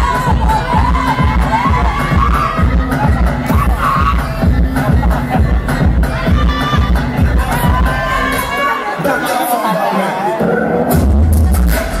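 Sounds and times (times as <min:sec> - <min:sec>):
audience cheering and shouting: 0:00.0 - 0:12.0
loud dance music with bass beat: 0:00.0 - 0:12.0.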